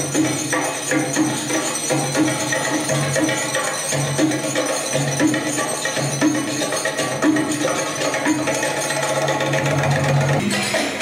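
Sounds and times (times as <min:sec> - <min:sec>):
darbuka drum roll: 0:00.0 - 0:11.0.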